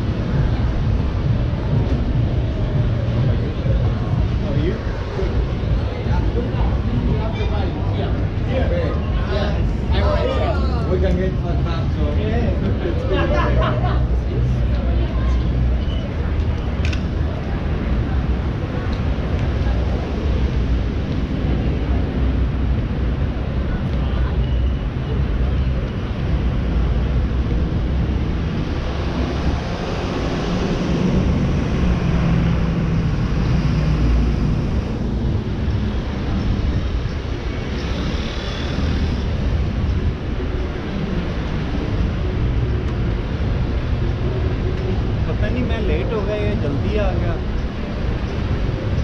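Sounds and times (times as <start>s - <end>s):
passing cars rumble: 0.0s - 49.0s.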